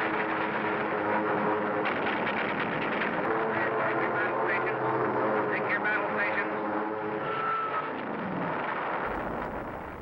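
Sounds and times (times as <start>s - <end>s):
propeller aircraft engine drone: 0.0s - 10.0s.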